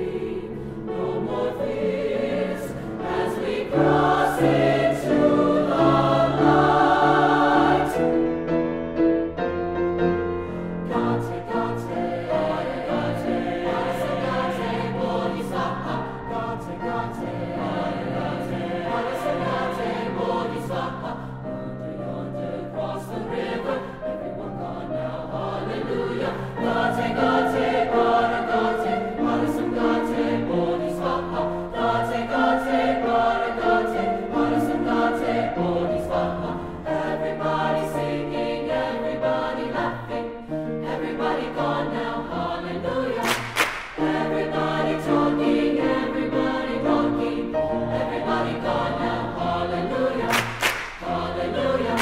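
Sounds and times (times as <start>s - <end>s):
mixed choir singing chords: 0.0s - 52.0s.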